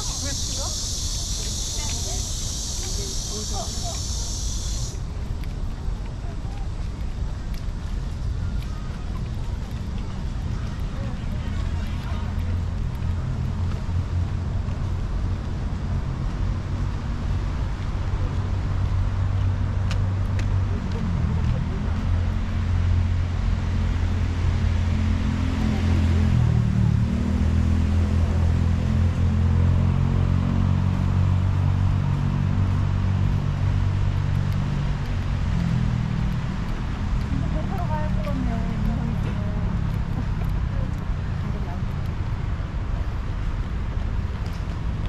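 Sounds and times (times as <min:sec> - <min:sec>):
low rumble of road traffic: 0:00.0 - 0:45.0.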